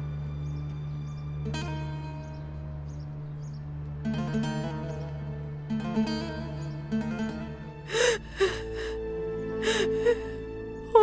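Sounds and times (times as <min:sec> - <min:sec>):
soft background music: 0:00.0 - 0:11.0
woman crying and sobbing: 0:07.9 - 0:11.0.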